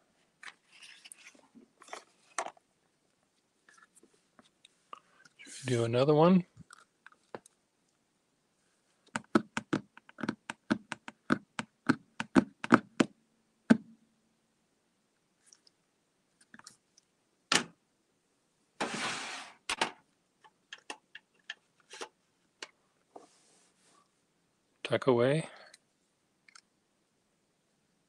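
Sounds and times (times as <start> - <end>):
pen tapping on paper: 9.1 - 13.1.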